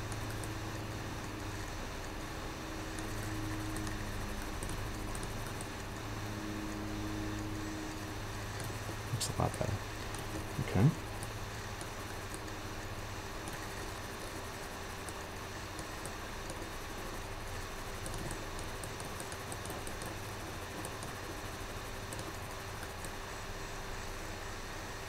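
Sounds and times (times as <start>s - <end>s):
faint ticks: 0.0s - 0.6s, 2.9s - 6.1s, 13.4s - 23.2s
low electrical hum: 0.0s - 25.0s.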